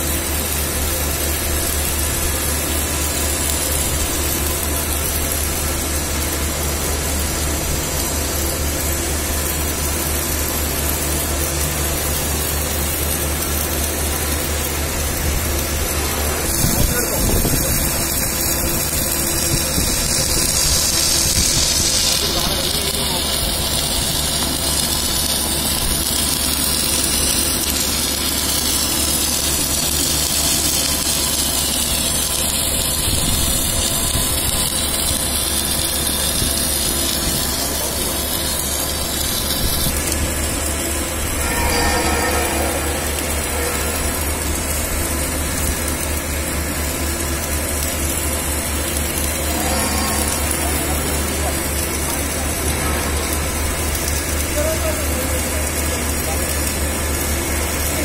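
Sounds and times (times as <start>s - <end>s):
electrical hum: 0.0s - 58.0s
mechanical drone: 0.0s - 58.0s.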